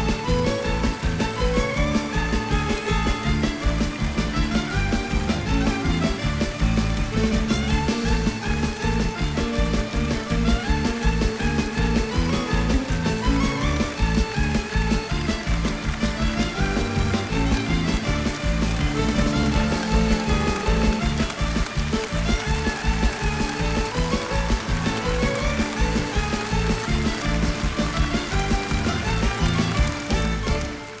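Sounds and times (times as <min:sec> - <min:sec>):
drum kit: 0:00.0 - 0:31.0
live band playing: 0:00.0 - 0:31.0.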